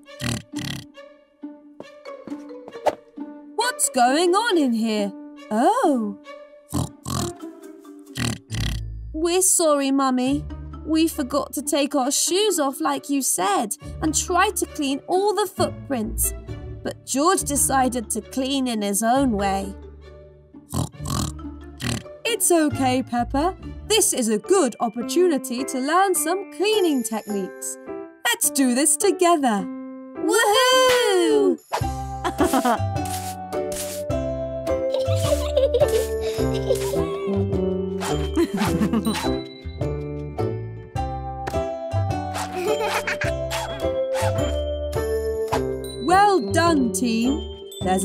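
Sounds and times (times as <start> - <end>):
soft background music: 0.0 - 48.0
cartoon pig snorts: 0.2 - 0.9, 6.7 - 7.4, 8.2 - 8.8, 20.7 - 22.1, 42.3 - 44.4.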